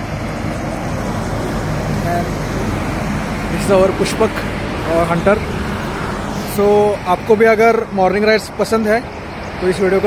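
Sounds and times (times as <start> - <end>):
motor vehicle rumble: 0.0 - 10.0.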